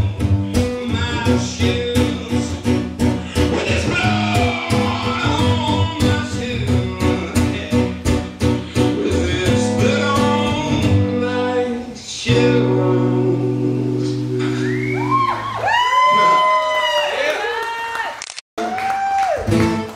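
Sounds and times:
guitar strumming: 0.0s - 15.6s, 19.4s - 19.9s
audience whistles and whoops: 14.5s - 19.8s.

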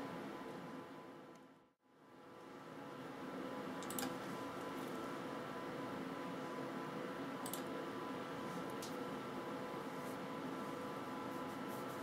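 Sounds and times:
computer cooling fans humming: 0.0s - 12.0s.

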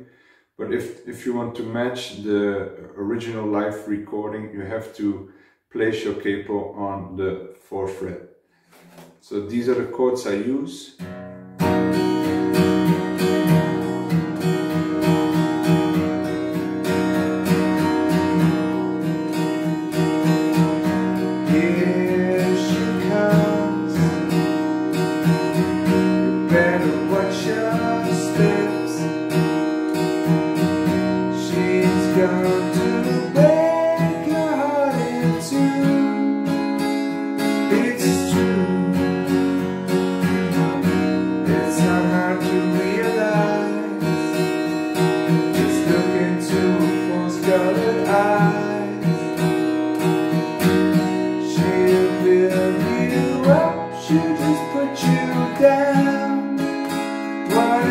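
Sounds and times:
acoustic guitar strummed: 8.6s - 9.8s, 11.0s - 57.9s.

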